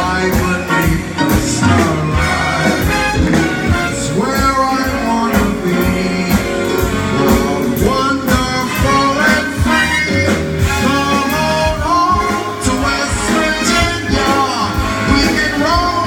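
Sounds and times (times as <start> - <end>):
live band playing: 0.0 - 16.0
man singing: 0.0 - 16.0.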